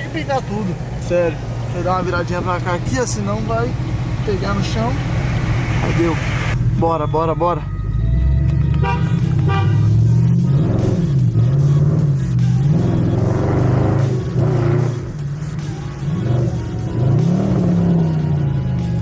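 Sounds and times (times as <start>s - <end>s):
car engine accelerating: 0.0s - 19.0s.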